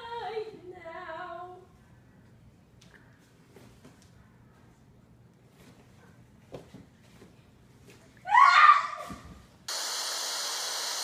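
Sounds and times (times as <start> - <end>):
tv static hiss: 9.7 - 11.0.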